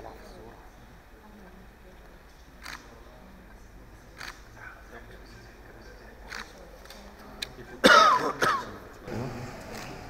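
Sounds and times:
person clearing throat: 7.8s - 9.3s.

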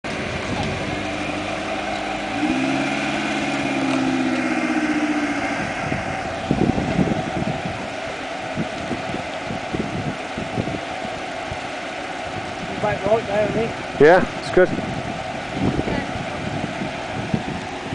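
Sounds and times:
off-road vehicle engine rumbling: 0.0s - 17.9s.

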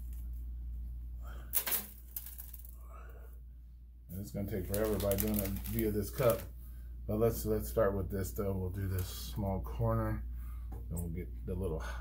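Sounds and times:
steady low hum: 0.0s - 12.0s
soil pouring onto plastic: 4.6s - 6.5s.

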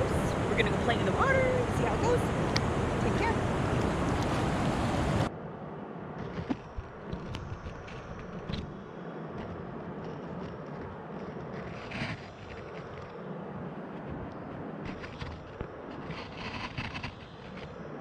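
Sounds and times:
river rapids rushing: 0.0s - 5.3s.

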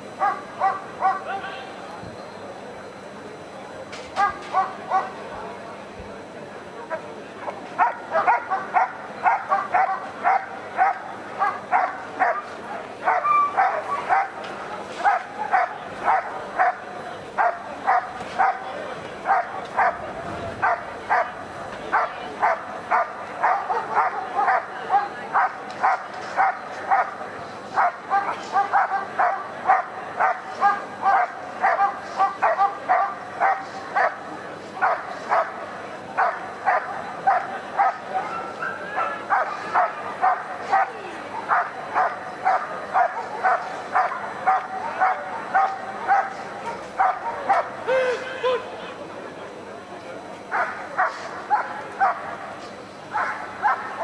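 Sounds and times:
dog barking: 0.2s - 1.3s, 4.2s - 5.1s, 7.8s - 14.4s, 15.0s - 16.8s, 17.4s - 18.6s, 19.3s - 20.0s, 20.6s - 27.2s, 27.8s - 34.2s, 34.8s - 35.6s, 36.2s - 47.7s, 50.5s - 52.4s, 53.1s - 54.0s.

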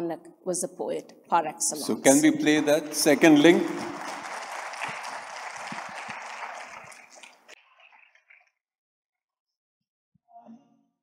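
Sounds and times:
audience applause: 2.1s - 7.6s.

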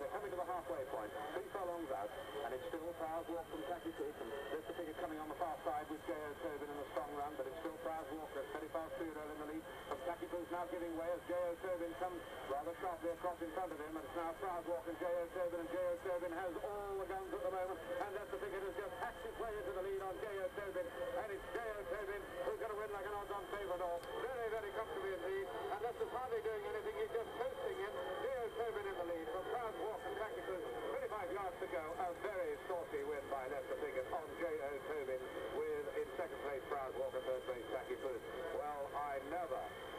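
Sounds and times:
man commentating on radio: 0.0s - 39.9s.

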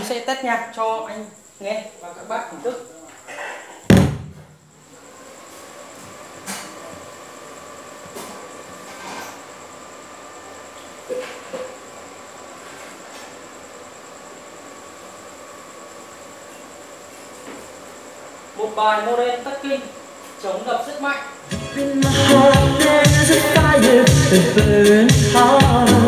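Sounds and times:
low steady hiss: 0.0s - 5.9s, 6.6s - 26.0s
faint high whine: 0.0s - 24.1s
loud thump: 3.9s - 4.6s.

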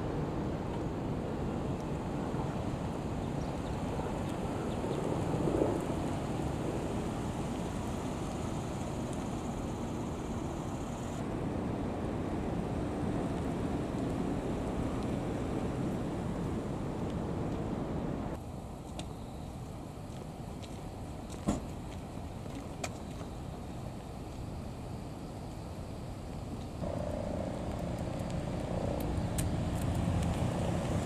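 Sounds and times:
wind buffeting microphone: 26.2s - 31.0s
cars driving slowly past: 26.8s - 31.0s.

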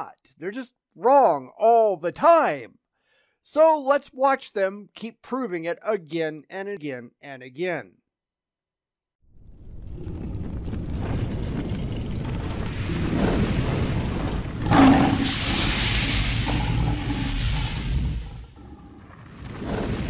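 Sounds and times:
low rumble: 9.3s - 20.0s
whoosh: 12.7s - 20.0s
bright rushing hiss: 12.8s - 18.6s.

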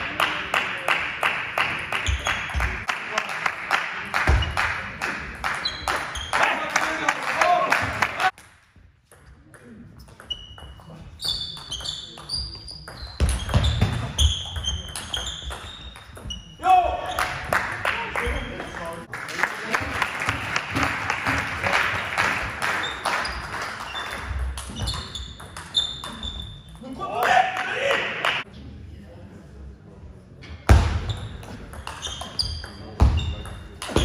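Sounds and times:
shoe squeaks on floor: 2.0s - 2.6s, 5.6s - 6.5s, 10.0s - 16.6s, 22.8s - 26.8s, 31.0s - 34.0s.

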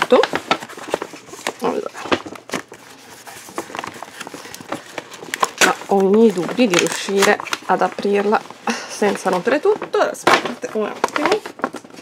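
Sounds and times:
paper bag rustling: 0.0s - 12.0s.

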